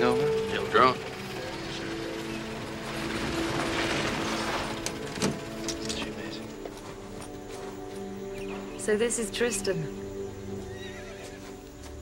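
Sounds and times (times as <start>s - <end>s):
background music of held notes: 0.0s - 12.0s
horse whinnying: 10.7s - 11.5s.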